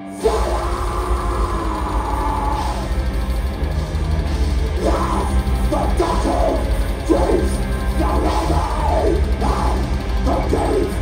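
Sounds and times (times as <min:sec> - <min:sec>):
heavy metal band playing live: 0:00.0 - 0:11.0
fast low drum pulse: 0:00.2 - 0:11.0.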